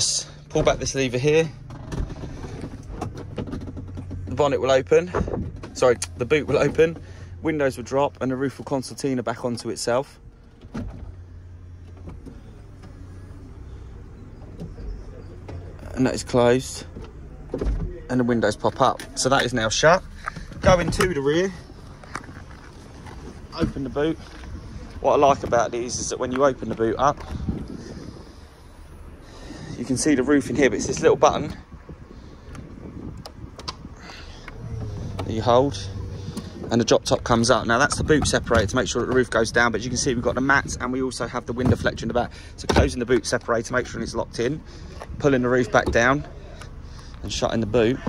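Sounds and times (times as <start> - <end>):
hydraulic pump humming: 9.6 - 39.3.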